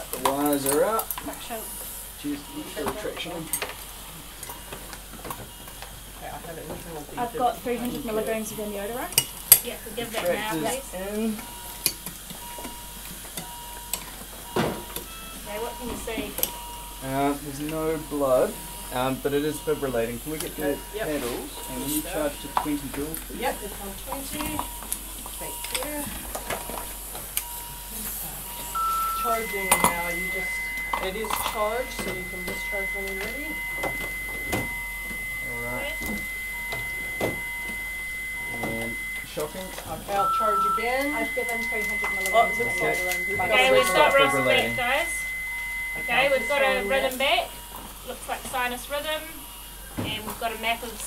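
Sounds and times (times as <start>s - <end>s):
low equipment hum: 0.0s - 51.0s
faint short beep: 28.6s - 39.3s, 40.2s - 47.0s.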